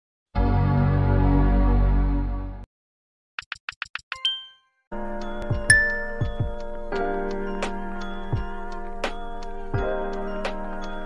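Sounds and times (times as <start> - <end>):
music track: 4.2 - 11.0
bright chime: 5.5 - 6.5
sharp bright ding: 5.7 - 6.3.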